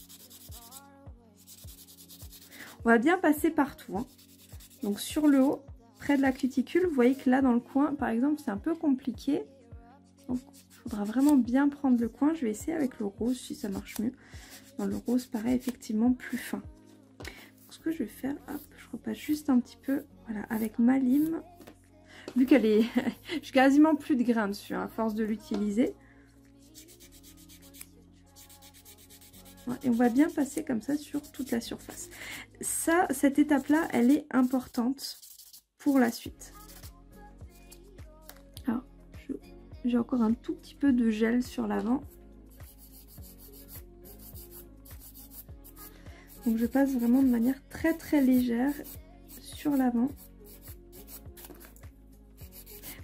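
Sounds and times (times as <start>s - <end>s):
nail buffer rubbing fingernail: 0.0s - 0.8s, 1.4s - 2.5s, 4.0s - 7.2s, 10.2s - 11.4s, 13.6s - 15.8s, 26.6s - 32.1s, 33.4s - 35.6s, 36.5s - 38.4s, 42.5s - 51.8s, 52.4s - 53.0s
quiet music with steady beat: 0.0s - 53.0s.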